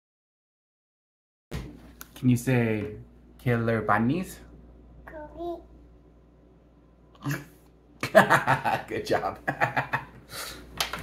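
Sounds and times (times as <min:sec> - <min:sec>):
toddler baby talk: 0:05.0 - 0:05.7.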